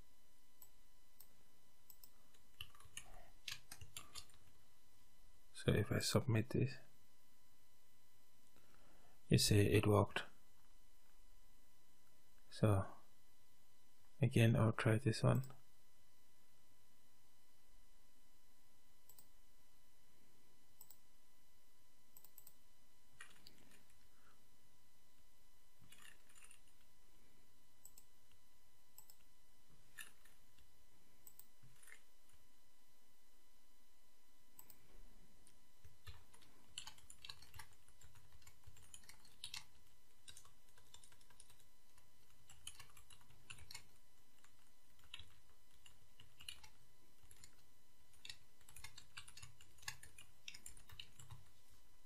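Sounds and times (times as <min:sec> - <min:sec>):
computer mouse clicks: 0:01.9 - 0:04.6, 0:19.1 - 0:19.3, 0:20.8 - 0:21.0, 0:22.2 - 0:22.6, 0:25.8 - 0:26.9, 0:27.8 - 0:28.1, 0:29.0 - 0:29.3, 0:31.2 - 0:32.4, 0:34.6 - 0:34.8, 0:35.8 - 0:47.6, 0:48.2 - 0:51.5.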